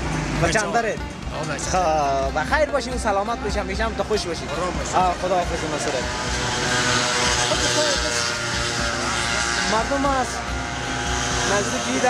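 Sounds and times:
vehicle engine hum: 0:00.0 - 0:12.0.

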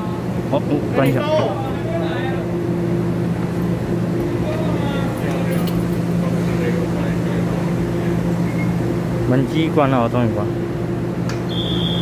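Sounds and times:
electric train humming: 0:00.0 - 0:12.0.

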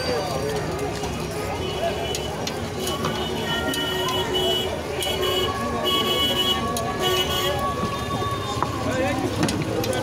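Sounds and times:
passing traffic: 0:00.0 - 0:10.0
people talking: 0:00.0 - 0:10.0.

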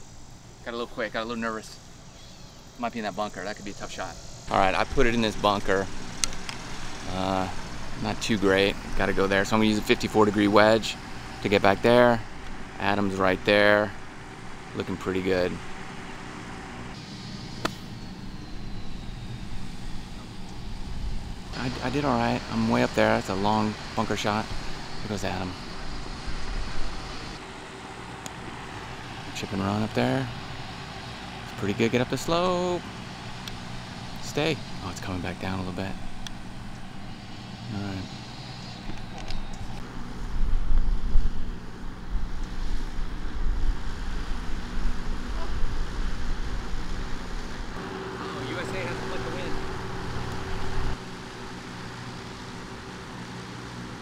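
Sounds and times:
steady low hum: 0:00.0 - 0:54.0
golf club striking sand: 0:17.6 - 0:18.0.

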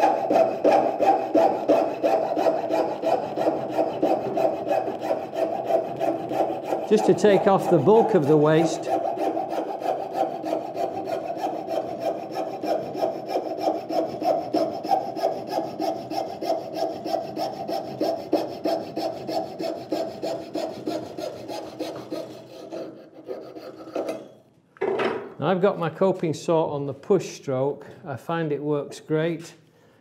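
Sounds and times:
coping saw cutting wood: 0:00.0 - 0:24.2.

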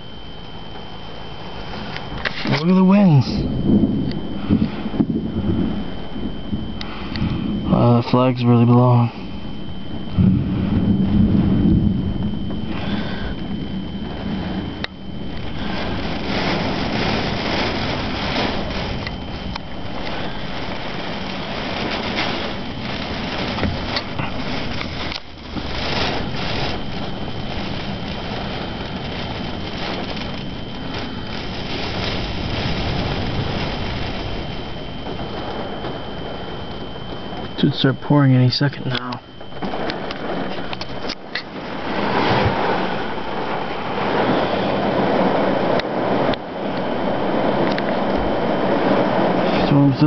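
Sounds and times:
low thunder rumble: 0:00.0 - 0:50.0
wind and rain on window glass: 0:00.0 - 0:50.0.

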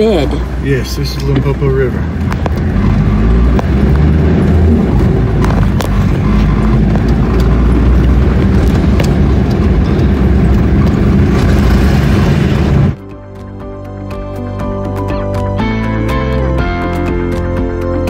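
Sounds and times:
engine and road rumble: 0:00.0 - 0:18.0.

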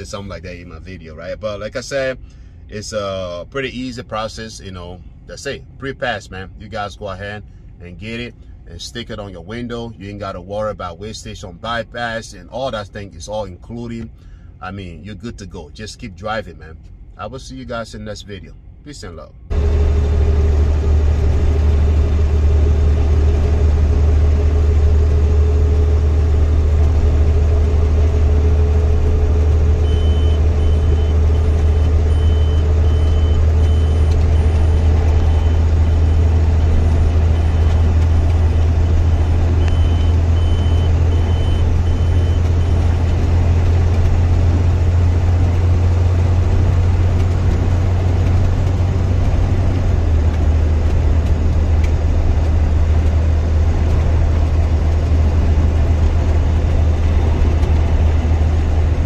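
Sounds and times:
road noise: 0:00.0 - 0:59.0
truck engine drone: 0:00.0 - 0:59.0.

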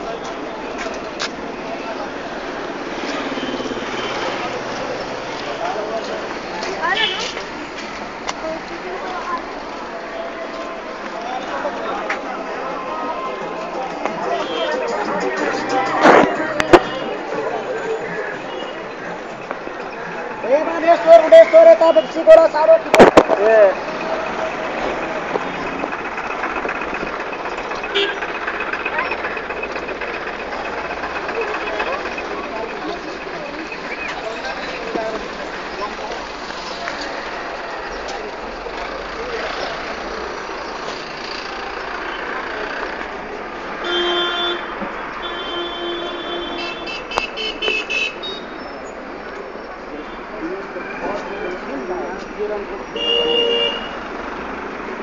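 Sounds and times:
indistinct voices: 0:00.0 - 0:43.8
busy street traffic: 0:00.0 - 0:55.0
low vehicle horn honks: 0:53.0 - 0:54.0.

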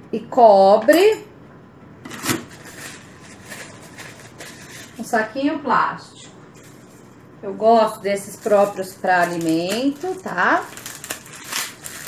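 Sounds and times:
plastic bag rustling: 0:02.4 - 0:05.3, 0:06.6 - 0:07.3, 0:08.0 - 0:12.0.

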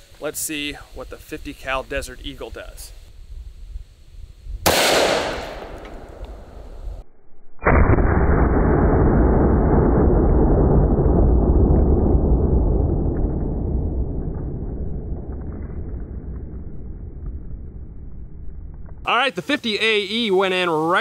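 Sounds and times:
slowed gunshot boom and rumble: 0:04.4 - 0:19.1
pistol shot: 0:04.6 - 0:06.6, 0:07.6 - 0:09.0.

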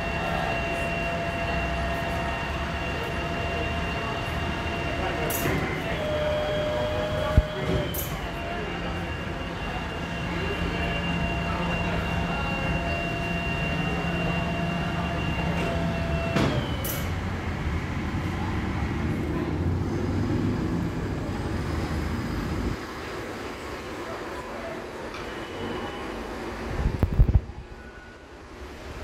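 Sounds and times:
tow truck engine running: 0:00.0 - 0:24.2.

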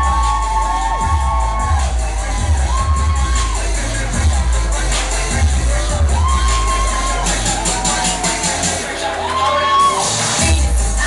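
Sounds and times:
crowd cheering and screaming: 0:00.0 - 0:11.0
loud pop music with bass beat: 0:00.0 - 0:11.0.

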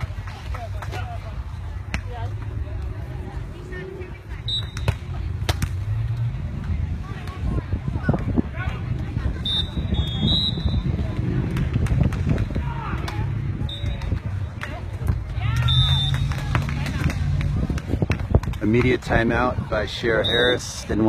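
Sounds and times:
steady low rumble: 0:01.1 - 0:19.8
players calling: 0:07.0 - 0:21.0
hands slapping volleyball: 0:11.3 - 0:19.1.

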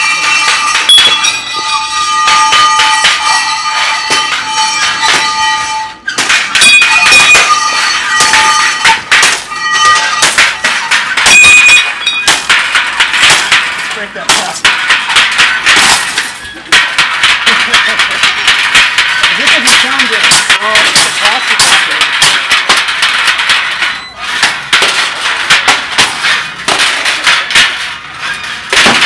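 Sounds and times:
metal crashing into wire cart: 0:00.0 - 0:29.0
scrap metal being beaten: 0:00.0 - 0:29.0.

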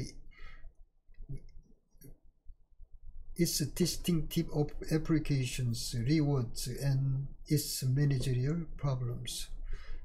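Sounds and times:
steady low hum: 0:02.6 - 0:10.0
person lecturing: 0:03.4 - 0:09.5.

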